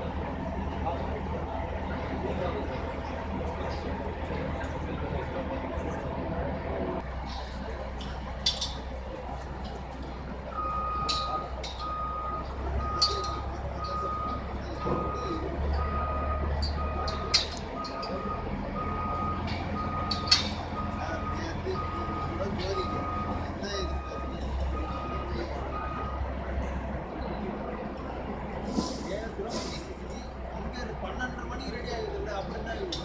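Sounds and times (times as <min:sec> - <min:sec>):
heavy engine drone: 0:00.0 - 0:33.0
vehicle warning beeper: 0:10.5 - 0:26.4.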